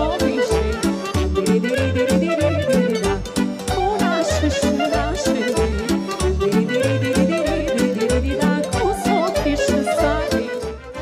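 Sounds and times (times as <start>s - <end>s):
folk dance music: 0.0s - 11.0s.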